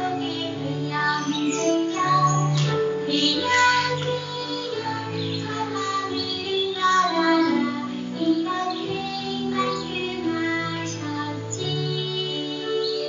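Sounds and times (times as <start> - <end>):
children singing a song: 0.0 - 13.0
instrumental accompaniment: 0.0 - 13.0.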